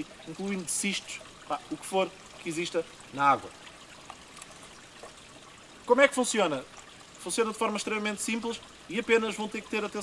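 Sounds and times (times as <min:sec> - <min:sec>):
trickle of running water: 0:00.0 - 0:10.0.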